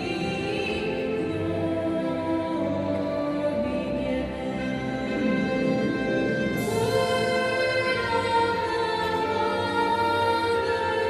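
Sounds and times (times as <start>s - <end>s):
musical accompaniment: 0.0s - 11.0s
person singing: 0.0s - 11.0s.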